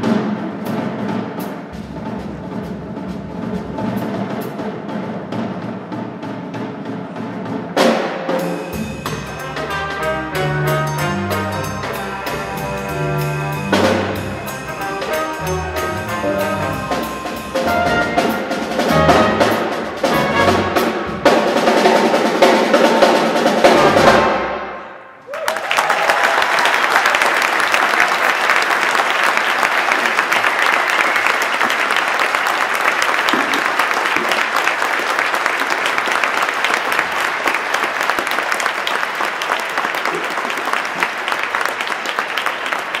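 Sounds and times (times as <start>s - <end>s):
jazz combo playing: 7.8s - 24.6s
audience applause: 25.2s - 43.0s.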